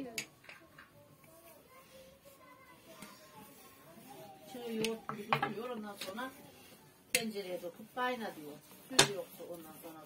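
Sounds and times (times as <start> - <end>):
quiet voices talking: 0.0 - 10.0.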